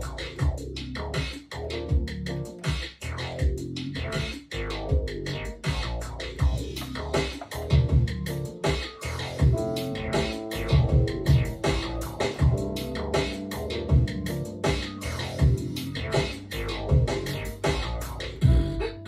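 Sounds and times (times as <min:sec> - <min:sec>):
deep kick drum hits: 0:07.7 - 0:08.1, 0:09.4 - 0:13.3, 0:13.9 - 0:14.8, 0:15.4 - 0:15.7, 0:16.9 - 0:17.8, 0:18.4 - 0:18.8
held synth keyboard notes: 0:09.4 - 0:16.2.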